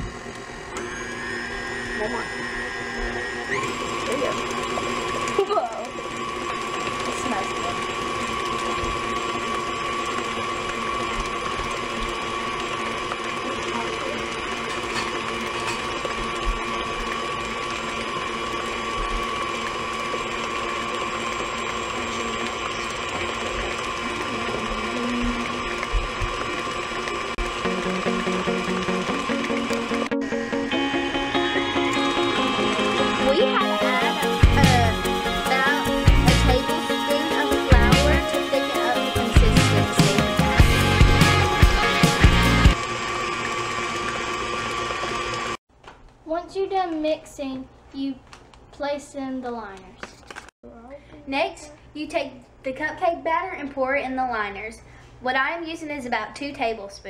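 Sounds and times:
stand mixer motor humming: 0:00.0 - 0:45.6
background music: 0:27.7 - 0:42.8.

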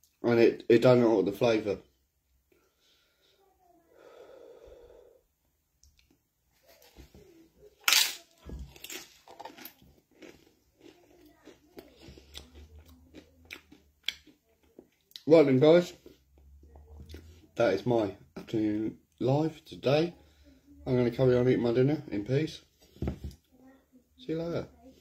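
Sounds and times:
sharp breath: 0:04.0 - 0:05.2
man chewing food: 0:07.9 - 0:15.3, 0:16.0 - 0:17.5.

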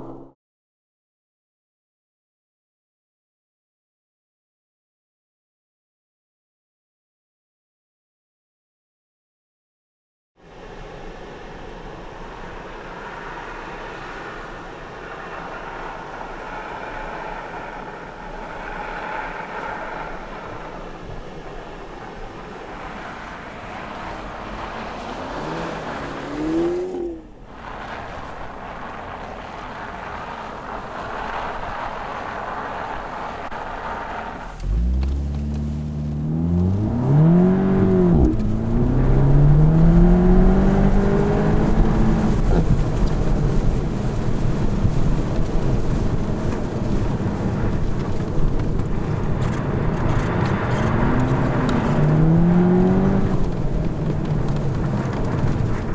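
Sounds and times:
car engine revving: 0:22.8 - 0:31.6, 0:32.6 - 0:43.8, 0:48.8 - 0:55.9.

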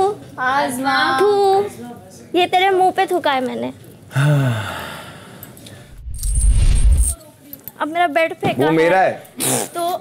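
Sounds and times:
person sighing: 0:04.1 - 0:05.4.

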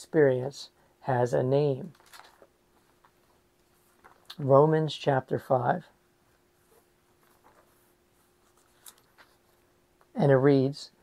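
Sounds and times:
thin pages turning: 0:01.8 - 0:04.4, 0:06.7 - 0:09.7.

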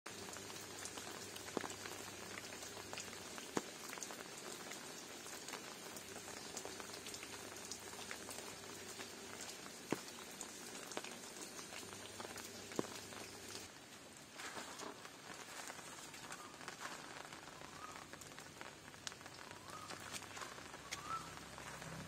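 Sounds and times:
water drops pattering on leaves: 0:00.1 - 0:22.0.

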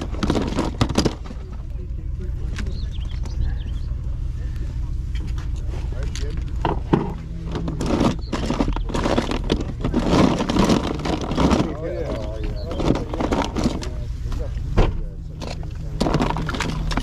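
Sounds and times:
plastic toys clattering in a crate: 0:00.0 - 0:01.6, 0:06.1 - 0:14.0, 0:15.4 - 0:17.0
steady low rumble: 0:00.0 - 0:17.0.

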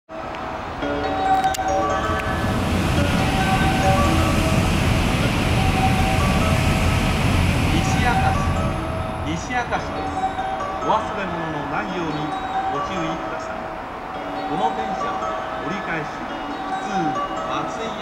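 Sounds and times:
chime-like melody: 0:00.8 - 0:18.0
train wheels rumbling on rails: 0:02.0 - 0:11.4.

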